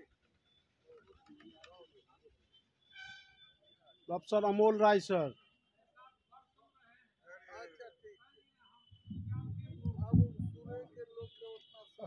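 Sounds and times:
microphone handling rumble and bumps: 9.0 - 11.0.

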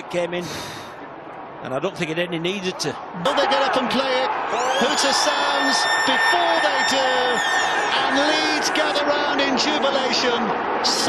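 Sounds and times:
hooter steady high tone: 4.6 - 8.7.

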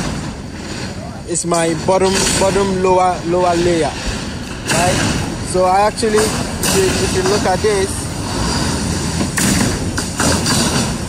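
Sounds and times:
construction site rumble: 0.0 - 11.0.

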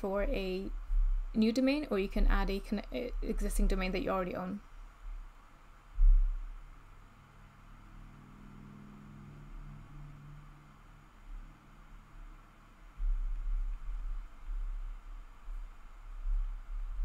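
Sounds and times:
faint low hum: 0.0 - 17.0
low rumble: 0.0 - 17.0.

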